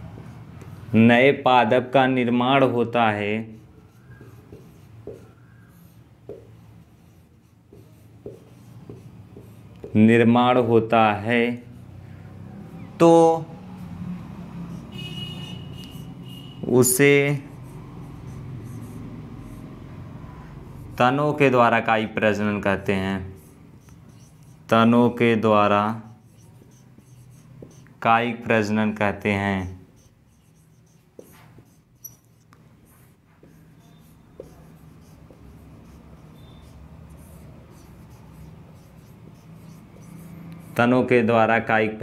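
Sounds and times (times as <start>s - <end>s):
marker writing on whiteboard: 0.0s - 1.1s, 2.2s - 42.0s.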